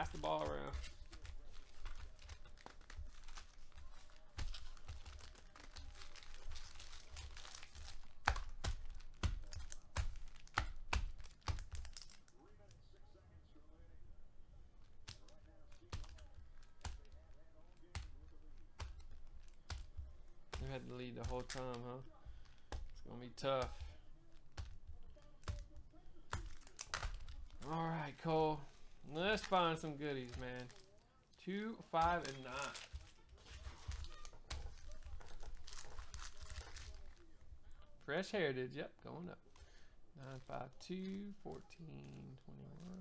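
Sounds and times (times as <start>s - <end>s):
foil wrappers crinkling: 0.0s - 12.6s, 14.8s - 38.0s, 39.4s - 43.0s.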